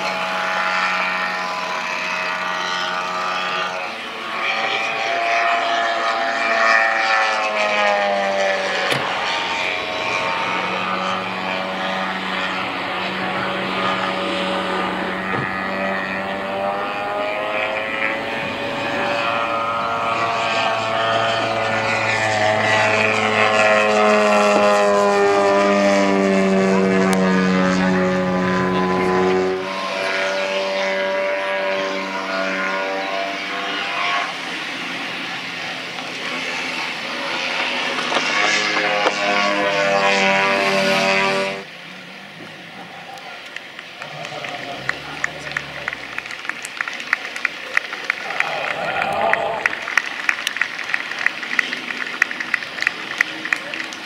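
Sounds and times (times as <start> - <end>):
model airplane engine at high power: 0.0 - 54.0.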